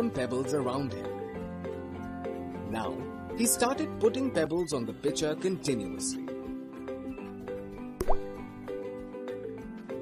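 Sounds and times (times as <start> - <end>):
background music: 0.0 - 10.0
cartoon plop sound effect: 8.0 - 8.4.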